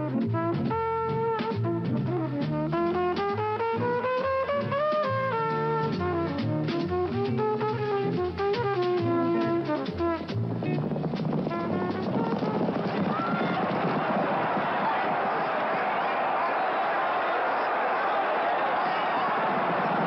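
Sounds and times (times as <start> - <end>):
brass jazz music with drums: 0.0 - 20.0
crowd cheering and shouting: 12.6 - 20.0.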